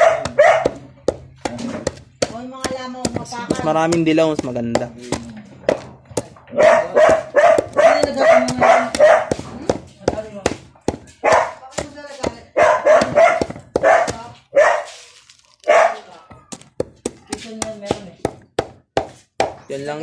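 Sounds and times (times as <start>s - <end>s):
dog yapping: 0.0s - 0.8s, 6.5s - 9.5s, 11.2s - 11.6s, 12.5s - 15.0s, 15.6s - 16.2s
pestle pounding in a mortar: 0.0s - 14.6s, 16.2s - 20.0s.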